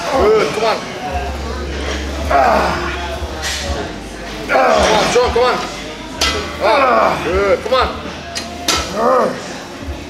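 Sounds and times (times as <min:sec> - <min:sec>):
iron plates clinking: 0:03.4 - 0:09.0.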